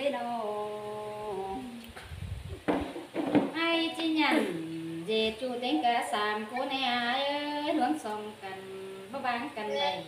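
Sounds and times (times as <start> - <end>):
woman singing a long note: 0.0 - 1.9.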